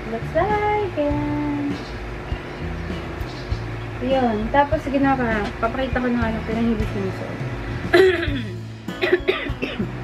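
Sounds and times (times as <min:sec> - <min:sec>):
music: 0:00.0 - 0:10.0
woman coughing: 0:07.9 - 0:10.0.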